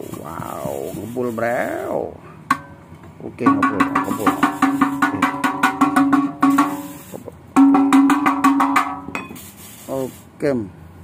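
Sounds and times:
metal tube knocked rapidly: 3.4 - 9.3.

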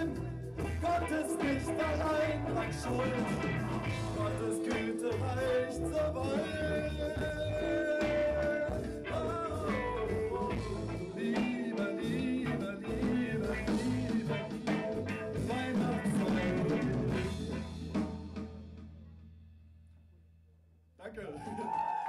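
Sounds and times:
person singing: 0.0 - 17.6
live rock band playing: 0.0 - 19.5
drums: 0.0 - 19.9.

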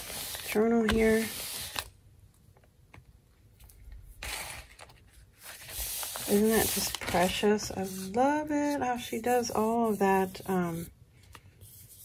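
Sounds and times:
paper rustling: 4.2 - 12.0.

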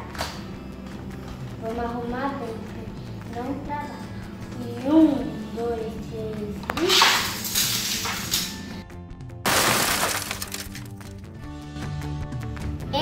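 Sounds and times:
background music: 0.0 - 13.0
plastic toys rattling clatter: 6.8 - 8.5, 9.6 - 11.0
toy car crashing into toy soldiers: 6.8 - 8.6, 9.4 - 11.0.

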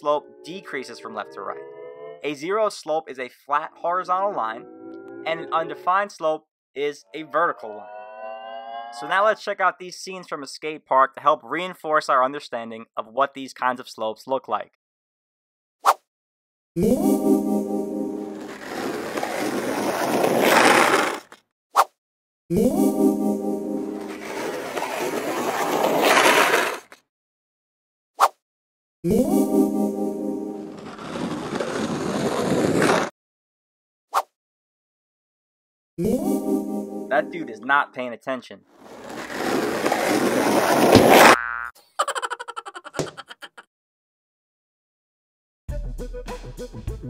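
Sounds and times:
rising rush of noise: 7.6 - 9.0
skateboard wheels rolling: 18.3 - 21.4, 23.9 - 27.0, 30.7 - 33.1, 38.8 - 41.4
music chord: 36.4 - 37.7
springy cartoon boing: 41.3 - 41.8.

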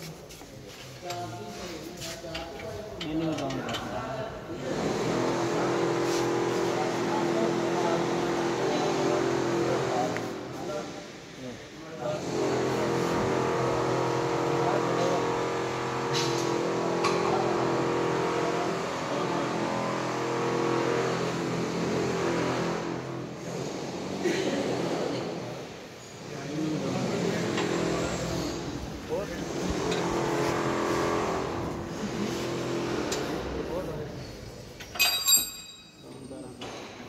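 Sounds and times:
industrial machinery humming: 26.4 - 34.0.

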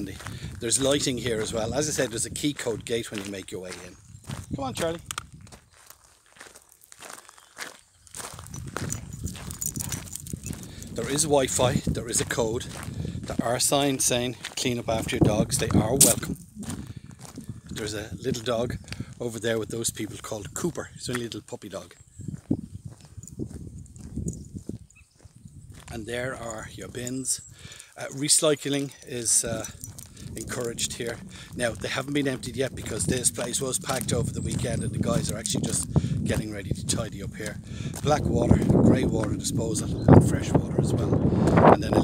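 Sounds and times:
footsteps on gravel: 0.0 - 40.0, 41.0 - 42.0.

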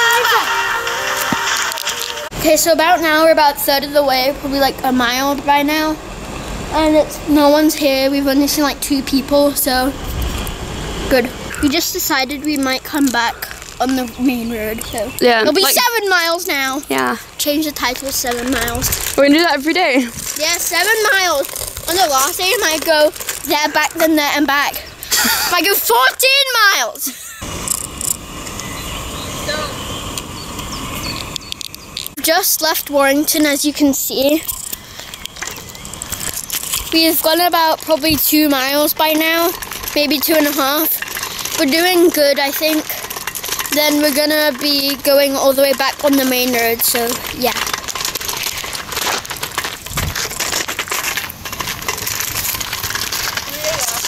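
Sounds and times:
steady low rumble: 2.2 - 25.9
footsteps crunching on gravel: 11.5 - 24.9, 34.7 - 54.0.

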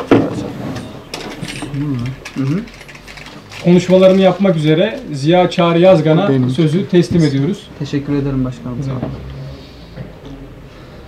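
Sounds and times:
small clicks and handling rattle: 1.1 - 5.1.

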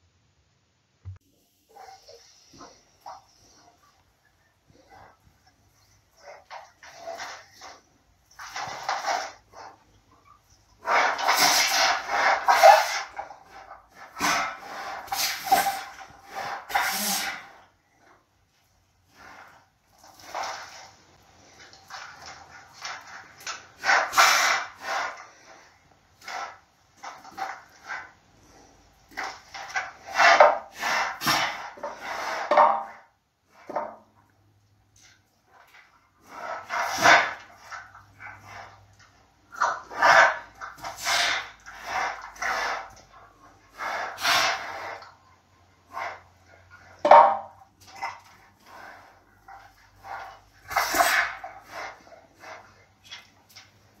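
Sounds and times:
bear snuffling: 35.1 - 45.2, 47.8 - 54.0
wooden pieces knocking: 47.0 - 47.5.

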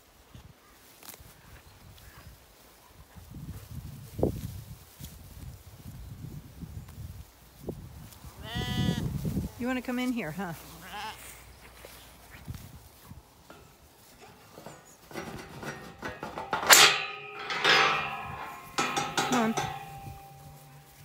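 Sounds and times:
metal gate clanking and rattling: 13.4 - 21.0.

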